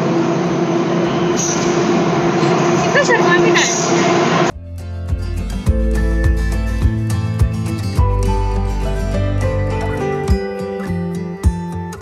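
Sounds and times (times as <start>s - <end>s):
train rumble and hum: 0.0s - 4.6s.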